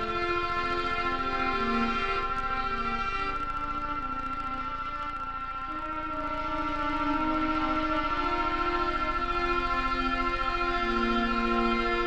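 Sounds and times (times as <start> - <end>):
fast low synthesizer pulsing: 0.0 - 12.0
high synthesizer drone: 0.0 - 12.0
sustained low synthesizer notes: 0.0 - 12.0.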